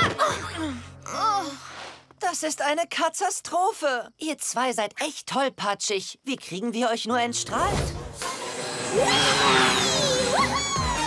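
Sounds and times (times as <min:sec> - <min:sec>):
small motor buzzing rising pitch: 0:08.2 - 0:11.0.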